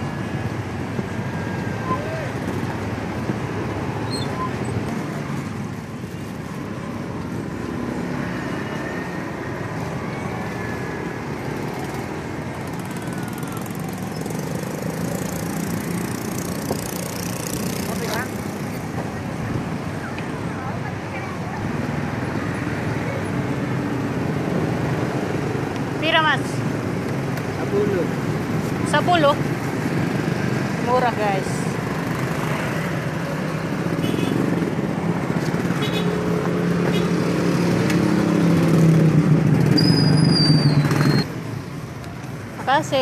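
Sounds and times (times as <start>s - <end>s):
passing traffic: 0.0s - 43.0s.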